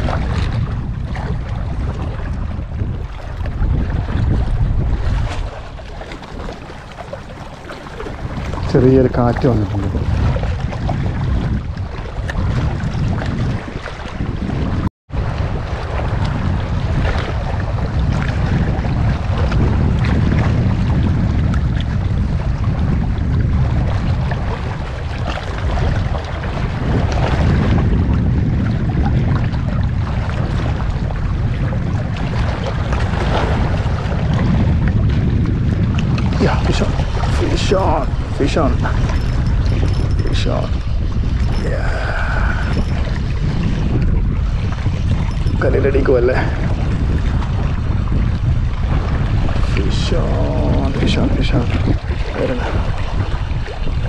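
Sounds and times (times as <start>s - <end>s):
waves washing against rocks: 0.0s - 54.0s
wind buffeting microphone: 0.0s - 54.0s.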